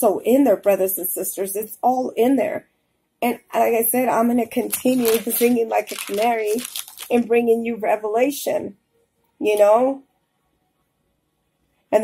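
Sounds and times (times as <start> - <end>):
woman speaking: 0.0 - 2.6, 3.2 - 8.8, 9.4 - 10.0.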